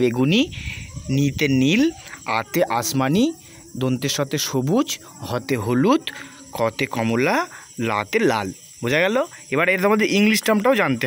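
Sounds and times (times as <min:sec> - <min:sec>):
man reciting syllables: 0:00.0 - 0:11.0.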